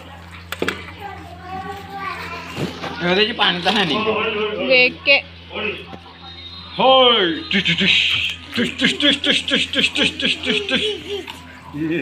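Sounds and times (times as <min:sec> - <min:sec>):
children playing: 0:00.0 - 0:12.0
steady low hum: 0:00.0 - 0:12.0.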